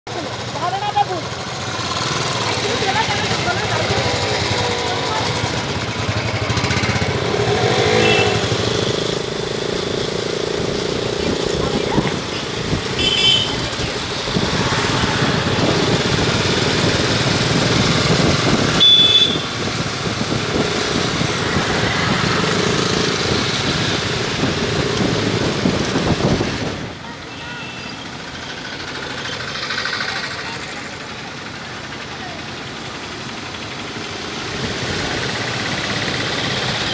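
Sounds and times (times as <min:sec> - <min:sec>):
voices: 0:00.1 - 0:08.7, 0:10.8 - 0:16.8, 0:26.7 - 0:36.9
motorcycles riding past revving: 0:00.1 - 0:27.0, 0:28.0 - 0:36.9.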